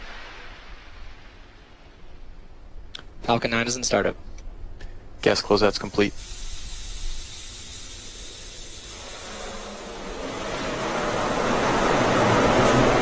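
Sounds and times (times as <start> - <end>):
rocket venting gas hiss: 5.2 - 13.0.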